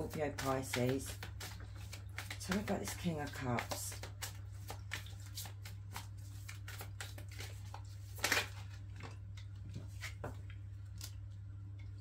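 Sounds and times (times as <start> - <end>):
cards being shuffled: 0.0 - 11.2.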